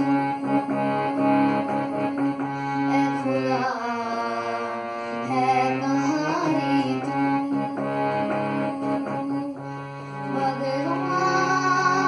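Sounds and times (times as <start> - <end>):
boy singing devotional melody: 0.0 - 12.0
harmonium chords: 0.0 - 12.0.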